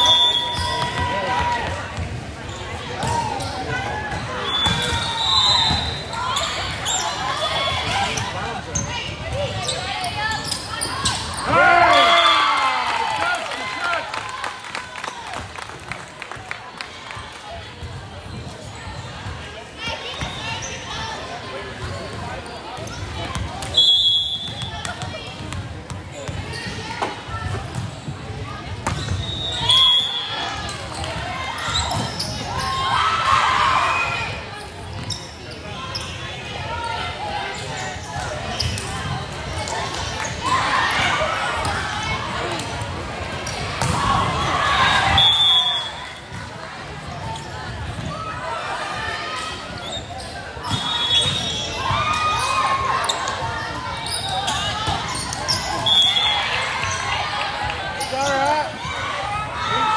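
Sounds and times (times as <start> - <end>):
referee's whistle blasts: 0.0 - 1.0, 4.4 - 6.2, 23.7 - 24.9, 29.0 - 30.4, 44.8 - 46.2, 50.6 - 51.8, 55.8 - 56.6
shouts and cheers: 11.4 - 15.4, 55.8 - 59.9.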